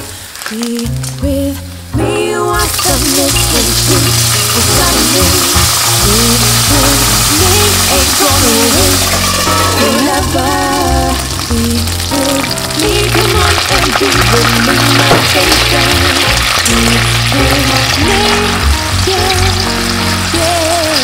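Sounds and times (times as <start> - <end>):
seafood sizzling in frying pan: 2.6 - 21.0.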